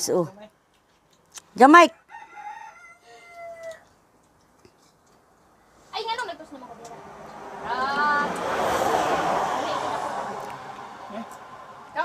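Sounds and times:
rooster crowing: 1.9 - 3.9.

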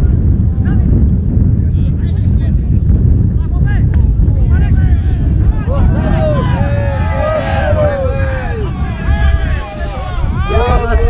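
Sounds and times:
wind buffeting microphone: 0.0 - 11.0
distant shouts: 4.4 - 11.0.

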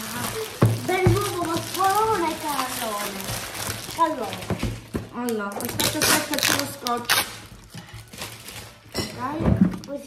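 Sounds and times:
cellophane crinkling: 0.0 - 10.0.

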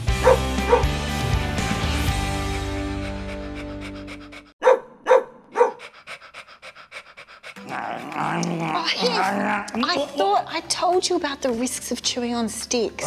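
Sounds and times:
dog barking: 0.2 - 0.9, 4.6 - 5.9
dog panting: 2.5 - 8.2.

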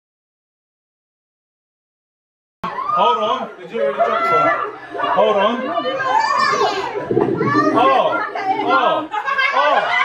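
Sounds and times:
children calling and shouting: 2.6 - 10.0.

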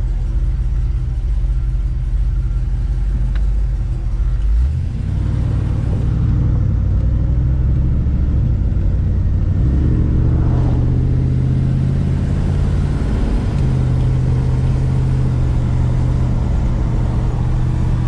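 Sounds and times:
car engine accelerating: 0.0 - 18.0.

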